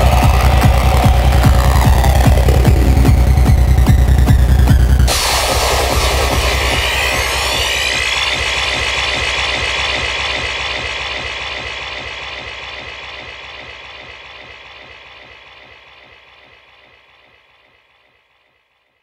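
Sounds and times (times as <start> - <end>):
dark psytrance music: 0.0 - 18.9.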